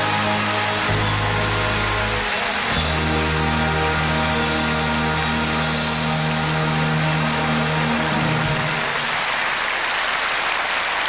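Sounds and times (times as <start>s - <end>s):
sustained bass notes: 0.0s - 9.0s
live band playing: 0.0s - 9.4s.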